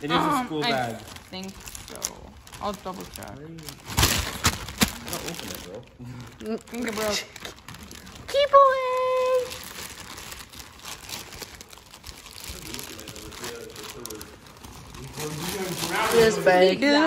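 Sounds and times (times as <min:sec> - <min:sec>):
plastic bag crinkling: 0:00.0 - 0:16.8.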